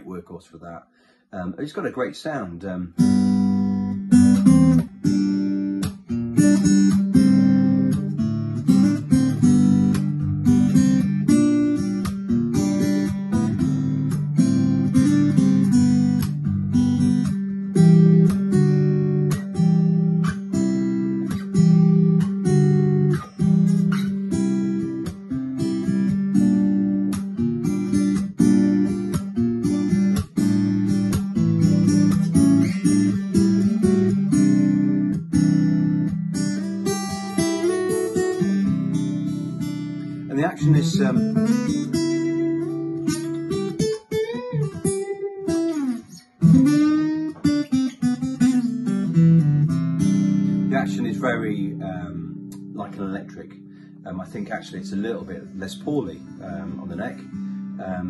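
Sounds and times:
acoustic guitar picking and strumming: 0:01.4 - 0:58.0.

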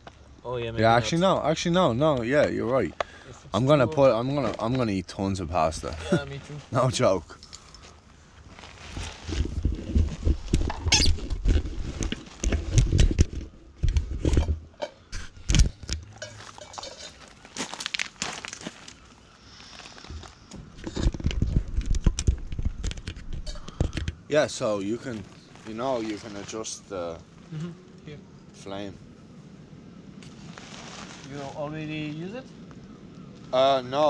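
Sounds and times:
camera handling rumble: 0:09.2 - 0:16.1, 0:20.1 - 0:24.3
gear clattering on pebbles: 0:15.4 - 0:19.1.

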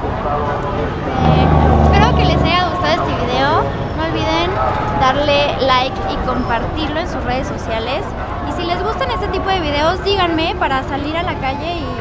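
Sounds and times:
street traffic: 0:00.0 - 0:12.0
vehicle engine running: 0:01.0 - 0:05.6.

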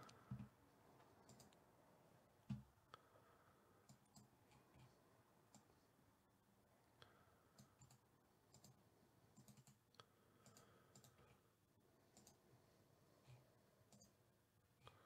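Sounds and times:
computer mouse clicks: 0:00.0 - 0:00.5, 0:01.2 - 0:01.6, 0:03.8 - 0:04.9, 0:07.5 - 0:11.4, 0:12.1 - 0:12.4, 0:13.2 - 0:14.2.

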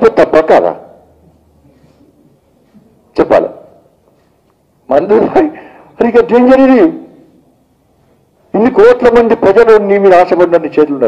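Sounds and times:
man speaking loudly into microphone: 0:00.0 - 0:01.1, 0:03.1 - 0:03.9, 0:04.8 - 0:07.3, 0:08.5 - 0:11.0.

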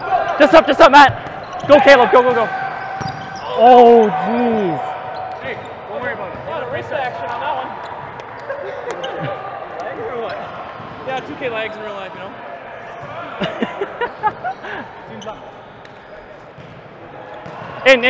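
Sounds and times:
players chattering: 0:00.0 - 0:18.0
volleyballs bouncing on gym floor: 0:01.0 - 0:03.4, 0:15.8 - 0:18.0.

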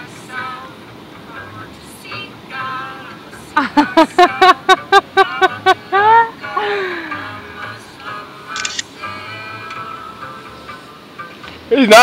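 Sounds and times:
high-pitched laughter: 0:03.6 - 0:06.7.

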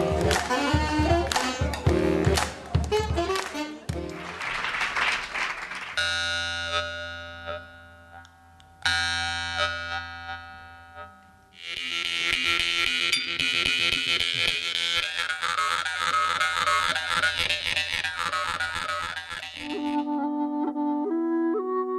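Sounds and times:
jaw harp buzzing: 0:06.0 - 0:20.1.

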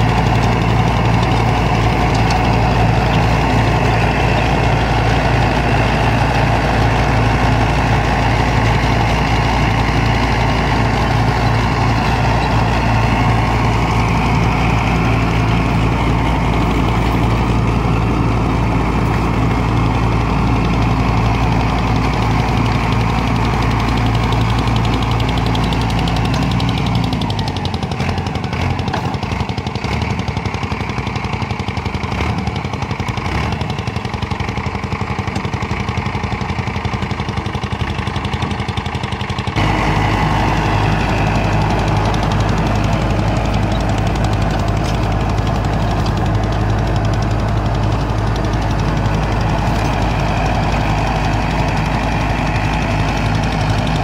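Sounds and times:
tractor diesel engine under load: 0:00.0 - 0:54.0.

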